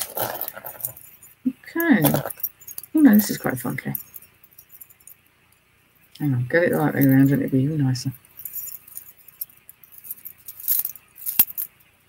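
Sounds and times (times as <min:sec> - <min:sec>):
jewellery clinking and rattling: 0:00.0 - 0:05.3, 0:06.1 - 0:11.9.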